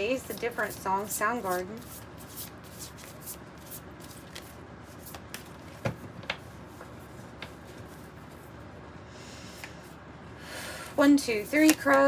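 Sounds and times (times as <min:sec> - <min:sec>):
cards being shuffled: 0:00.2 - 0:08.4, 0:11.4 - 0:12.0.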